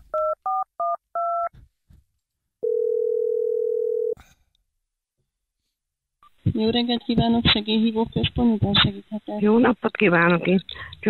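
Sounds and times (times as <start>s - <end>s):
telephone ringing tone: 2.6s - 4.2s.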